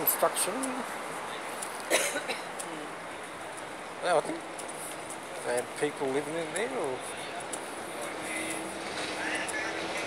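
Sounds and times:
city hiss and rumble: 0:00.0 - 0:10.0
faint voices: 0:00.0 - 0:10.0.

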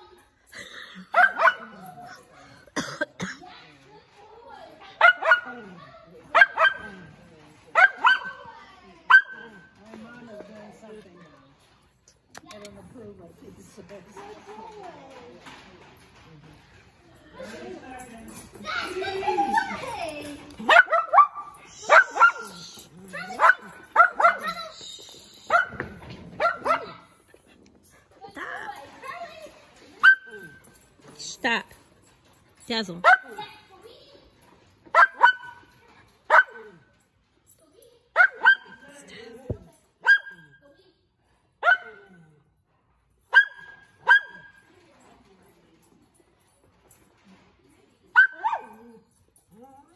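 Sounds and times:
dog barking: 0:01.1 - 0:01.9, 0:05.0 - 0:07.0, 0:07.7 - 0:08.5, 0:09.1 - 0:09.6, 0:20.6 - 0:24.6, 0:25.5 - 0:27.1, 0:30.0 - 0:30.6, 0:33.0 - 0:33.5, 0:34.9 - 0:35.7, 0:36.3 - 0:36.9, 0:38.2 - 0:38.9, 0:40.0 - 0:40.6, 0:41.6 - 0:42.3, 0:43.3 - 0:44.6, 0:48.2 - 0:48.9.

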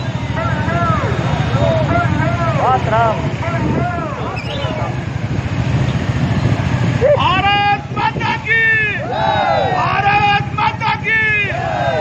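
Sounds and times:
motorcycles rumbling: 0:00.0 - 0:12.0.

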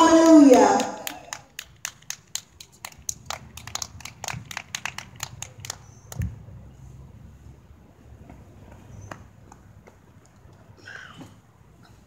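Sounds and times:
people clapping: 0:00.0 - 0:06.4.

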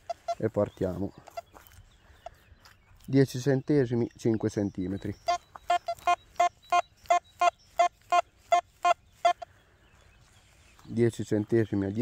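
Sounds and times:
metal detector short beeps: 0:04.5 - 0:09.4.

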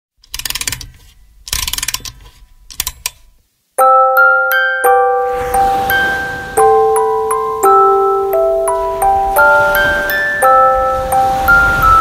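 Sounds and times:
mechanical ratcheting clicks: 0:00.2 - 0:03.3
glockenspiel melody: 0:03.8 - 0:12.0.

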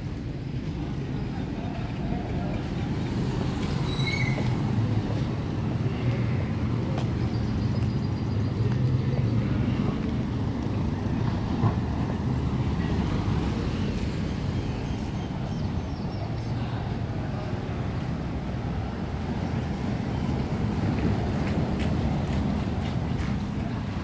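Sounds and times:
faint street traffic: 0:00.0 - 0:24.0.

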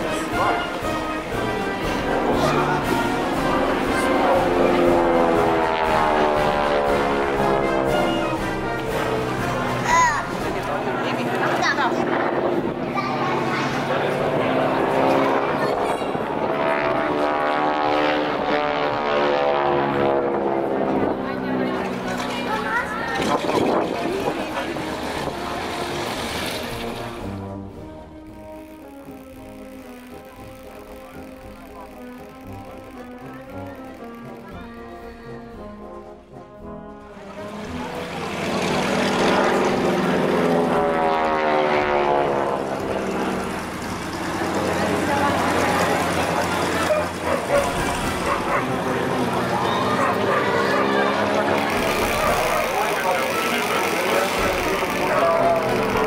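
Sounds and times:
music with held notes: 0:00.0 - 0:11.4, 0:23.9 - 0:50.2
voices: 0:00.0 - 0:17.2, 0:20.4 - 0:26.8, 0:37.2 - 0:56.0
loud aircraft engine: 0:00.0 - 0:56.0.

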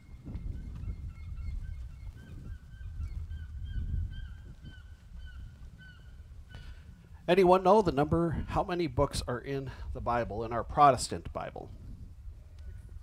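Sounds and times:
birds chirping: 0:00.0 - 0:07.5.

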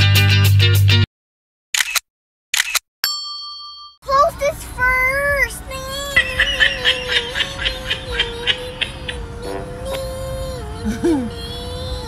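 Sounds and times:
bell-like ding: 0:03.0 - 0:04.0
child's voice holding a wavering pitch: 0:04.0 - 0:12.0.

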